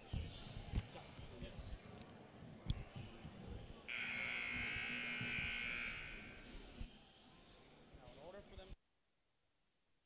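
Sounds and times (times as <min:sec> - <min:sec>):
scoreboard buzzer: 0:03.9 - 0:06.4.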